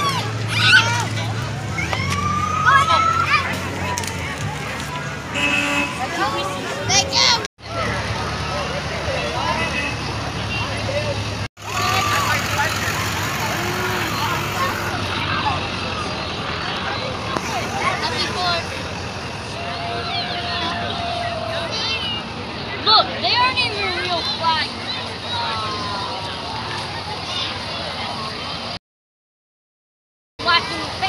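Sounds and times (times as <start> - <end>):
crowd chattering: 0.0 - 28.8
vehicles driving slowly past: 0.0 - 28.8, 30.4 - 31.0
low engine hum: 7.7 - 21.7.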